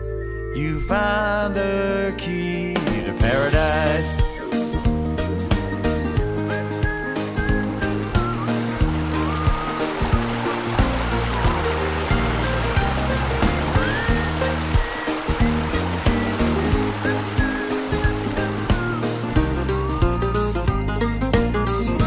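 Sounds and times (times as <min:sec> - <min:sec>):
country-pop instrumental: 0:00.0 - 0:22.0
sliding guitar notes: 0:03.2 - 0:22.0.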